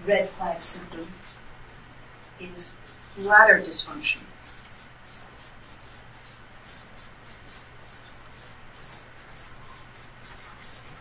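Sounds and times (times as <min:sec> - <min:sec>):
marker pen scratching on paper: 0:00.6 - 0:01.4, 0:02.4 - 0:11.0.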